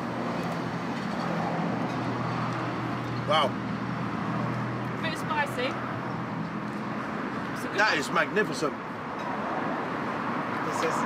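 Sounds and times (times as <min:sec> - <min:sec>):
road traffic hum: 0:00.0 - 0:11.0
man talking: 0:03.3 - 0:03.6, 0:07.6 - 0:08.8.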